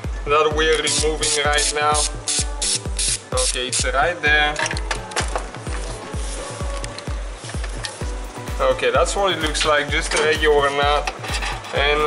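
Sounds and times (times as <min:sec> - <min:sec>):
music with fast bass-drum beat: 0:00.0 - 0:12.0.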